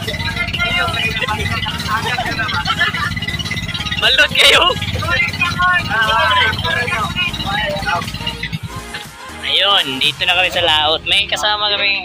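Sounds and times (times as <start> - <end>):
boat engine pulsing hum: 0.0 - 11.7
people's voices: 0.0 - 12.0.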